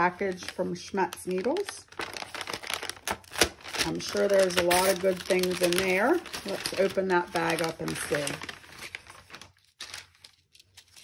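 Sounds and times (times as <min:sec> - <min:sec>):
paper bag rustling and crinkling: 0:00.0 - 0:11.0.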